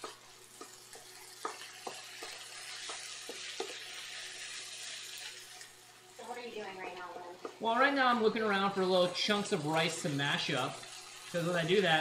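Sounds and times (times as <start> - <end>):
spatula knocking against pan: 0.0 - 3.8
rice sizzling in a skillet: 0.0 - 12.0.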